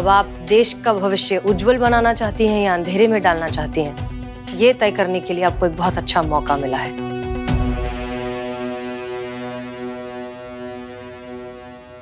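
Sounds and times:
low drone note: 7.0 - 12.0.

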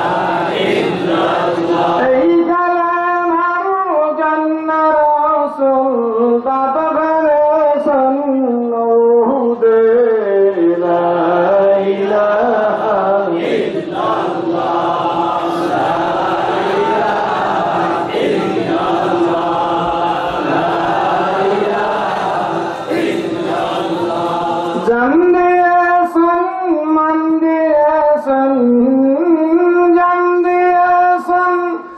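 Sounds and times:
men chanting in unison: 0.0 - 2.8, 10.5 - 25.6
man chanting: 0.0 - 31.9.

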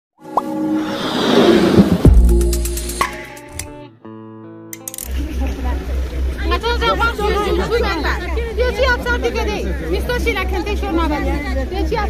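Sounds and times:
rising noise over steady tones: 0.3 - 3.4.

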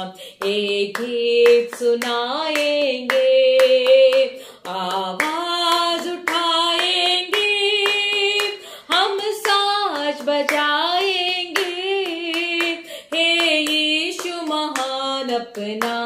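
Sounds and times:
hands clapping: 0.0 - 16.0
woman singing: 0.0 - 16.0.

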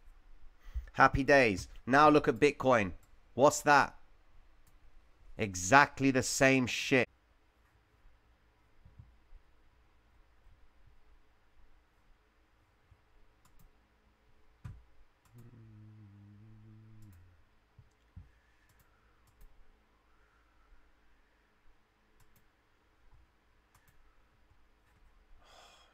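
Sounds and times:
low steady hum: 7.1 - 25.9
computer mouse clicks: 13.4 - 13.7, 17.8 - 19.6, 22.2 - 22.5, 23.7 - 24.0.

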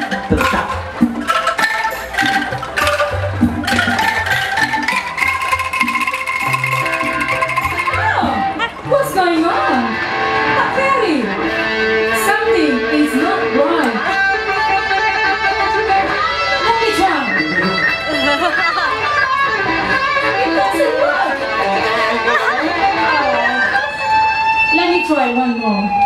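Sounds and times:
bamboo angklung ensemble chords: 0.0 - 24.7.

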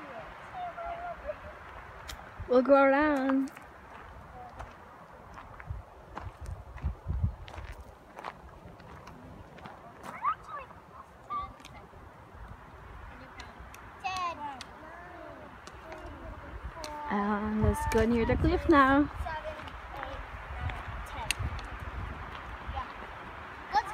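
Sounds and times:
wind rumbling on microphone: 0.0 - 23.9.

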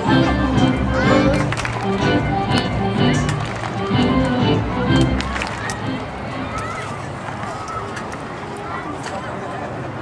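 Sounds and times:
music over sound system: 0.0 - 6.4
crowd chatter: 0.0 - 10.0.

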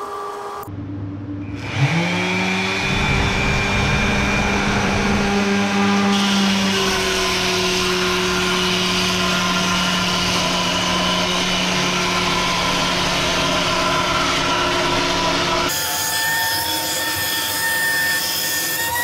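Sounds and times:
router spindle whining: 1.5 - 19.0.

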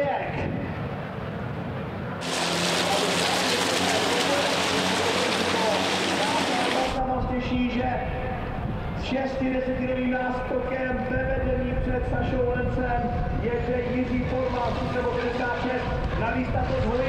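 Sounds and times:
low race engine drone: 2.0 - 7.1
race truck passing: 2.2 - 7.0.

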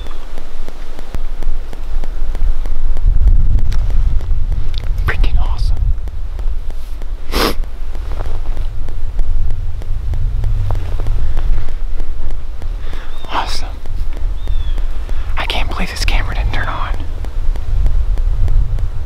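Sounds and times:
wind rumbling on microphone: 0.0 - 19.0
faint whispering: 4.9 - 5.8, 12.8 - 13.9, 15.2 - 17.2
short sharp hiss: 6.7 - 7.7.

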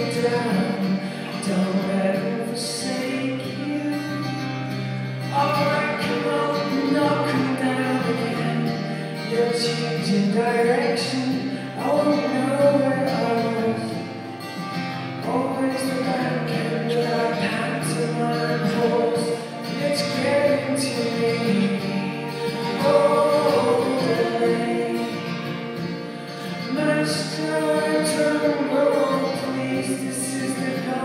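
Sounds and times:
man and woman singing: 0.0 - 4.4, 5.2 - 14.0, 15.2 - 31.0
strummed acoustic guitar: 0.0 - 31.0.

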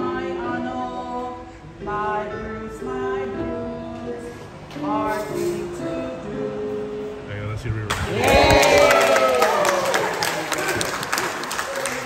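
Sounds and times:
people clapping: 7.9 - 12.0.

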